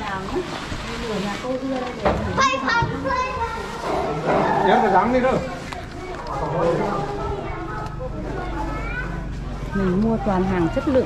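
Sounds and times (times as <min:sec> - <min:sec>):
people talking: 0:00.0 - 0:11.0
child's voice: 0:02.4 - 0:03.8, 0:07.2 - 0:09.3.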